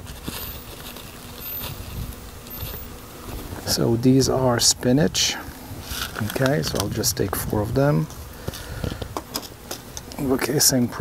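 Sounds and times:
insect buzzing: 0.0s - 11.0s.

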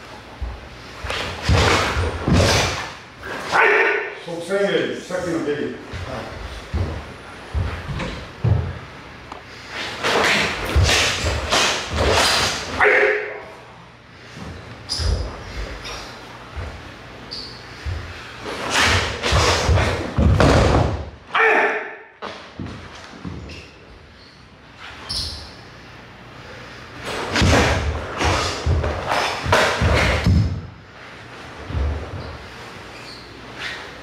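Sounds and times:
man shouting: 3.5s - 4.2s, 12.7s - 13.5s, 21.3s - 22.0s
man speaking: 3.8s - 6.5s.

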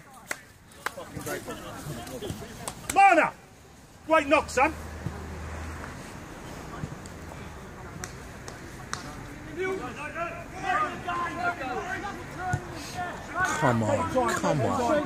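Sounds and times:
outdoor background noise: 0.0s - 15.0s
players calling out: 6.3s - 15.0s.

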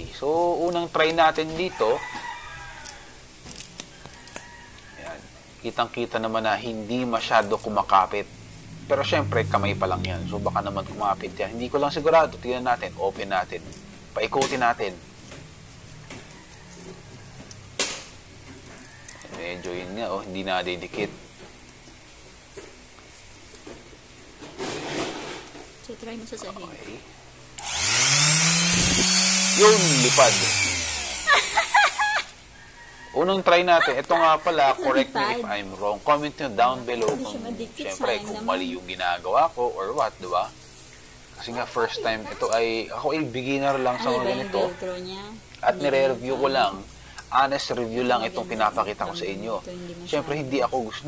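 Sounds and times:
scraping rustle: 21.0s - 25.7s.

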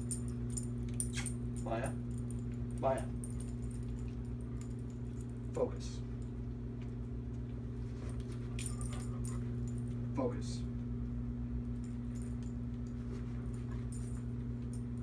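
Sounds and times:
dog collar tags jingling: 0.0s - 6.4s, 8.5s - 10.0s, 11.8s - 15.0s
low room hum: 0.0s - 15.0s.

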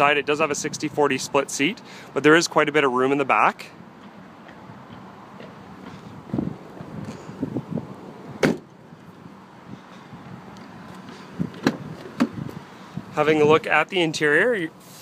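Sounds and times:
car door latch clicks: 8.4s - 8.7s
car trunk lid slamming: 8.4s - 8.7s, 11.5s - 12.4s.

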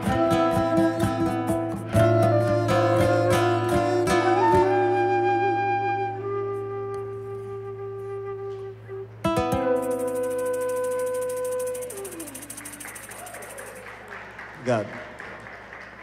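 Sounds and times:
flute note sliding down: 1.8s - 13.8s
tambourine jingling roll: 9.8s - 14.1s.

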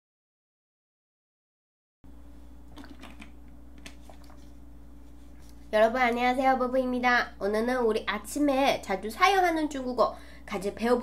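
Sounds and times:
steady low hum: 2.1s - 11.0s.

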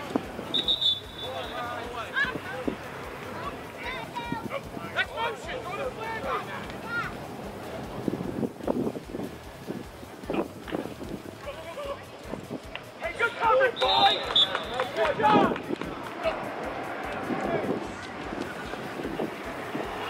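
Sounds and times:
players shouting: 0.0s - 7.8s, 13.0s - 20.0s
referee's whistle: 0.5s - 1.7s, 13.6s - 15.0s.

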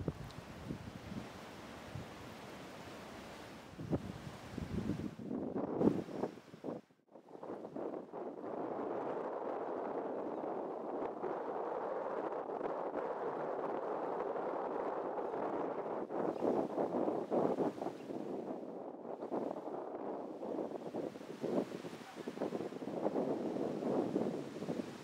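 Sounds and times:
wind on microphone: 0.0s - 25.0s.

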